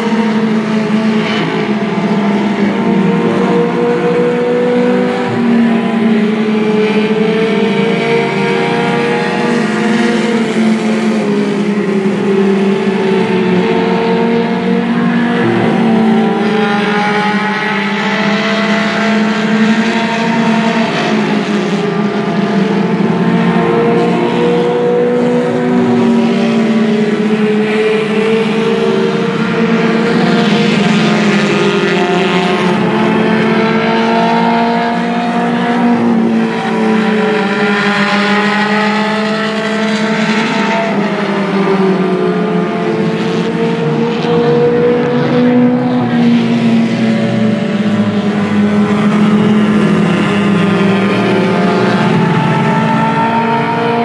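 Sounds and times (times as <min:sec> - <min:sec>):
race car engines running: 0:00.0 - 0:54.0.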